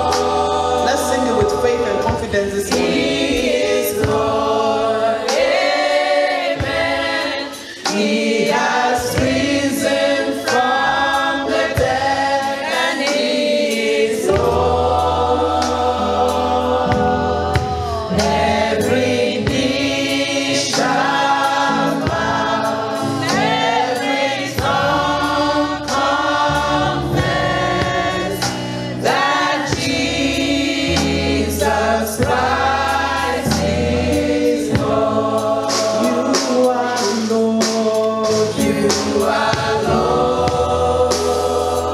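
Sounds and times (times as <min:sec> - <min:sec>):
instrumental accompaniment: 0:00.0 - 0:41.9
deep bass: 0:22.1 - 0:36.3.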